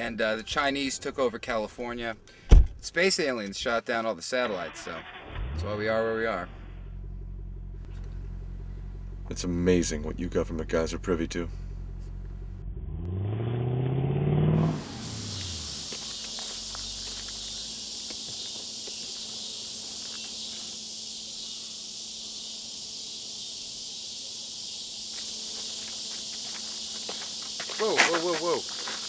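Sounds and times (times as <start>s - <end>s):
car driving by: 11.3s - 18.3s
insects chorus: 14.6s - 29.0s
footsteps on dirt path: 15.2s - 20.8s, 25.0s - 29.0s.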